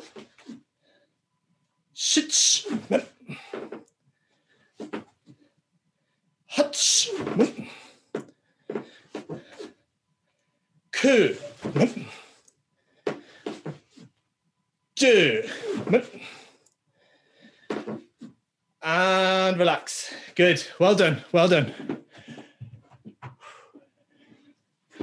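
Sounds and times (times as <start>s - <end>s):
man shouting: 2.0s - 3.2s, 6.5s - 7.7s, 11.0s - 12.1s, 15.0s - 16.1s.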